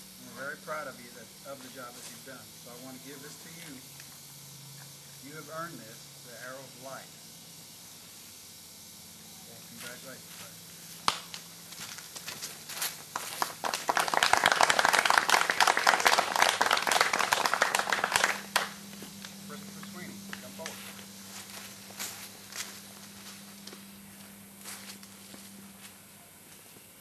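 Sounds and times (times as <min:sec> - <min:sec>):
small group applauding: 0:13.1 - 0:18.8, 0:19.8 - 0:20.8.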